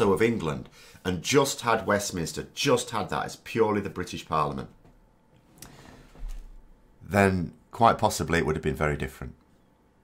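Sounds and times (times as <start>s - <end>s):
man breathing softly: 5.6s - 6.3s.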